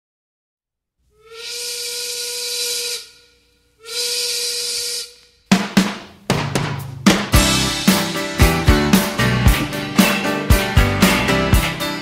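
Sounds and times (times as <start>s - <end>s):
whistle blasts: 1.2s - 5.4s
drum hits: 5.5s - 12.0s.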